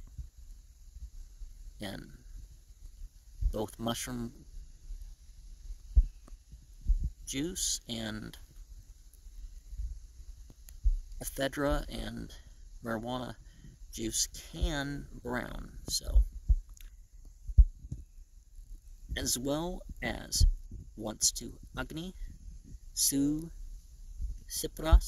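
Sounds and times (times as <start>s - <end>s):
dull low thumps: 0.0s - 7.5s, 8.3s - 25.0s
faint low hum: 0.0s - 25.0s.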